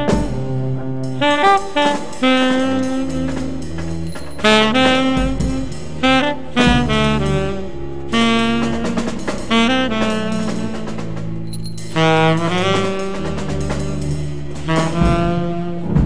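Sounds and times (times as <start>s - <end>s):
alto saxophone melody: 0.0s - 16.0s
double bass: 0.0s - 16.0s
drums: 0.0s - 16.0s
trombone: 0.0s - 16.0s.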